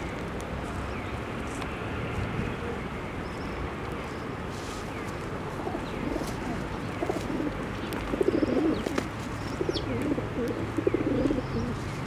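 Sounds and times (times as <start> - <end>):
pigeon cooing: 5.6 - 9.0, 9.6 - 11.8.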